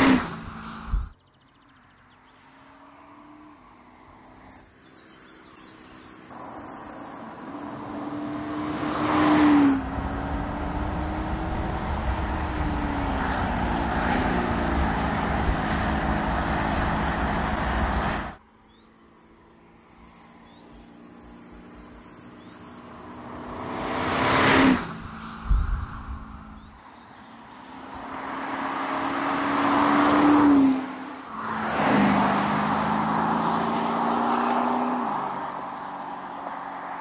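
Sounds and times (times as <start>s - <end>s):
car engine accelerating: 5.5s - 18.4s, 20.5s - 37.0s.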